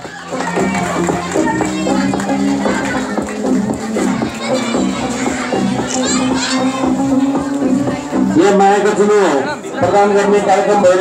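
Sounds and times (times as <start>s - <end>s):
background music: 0.0s - 11.0s
children shouting and chattering: 0.0s - 11.0s.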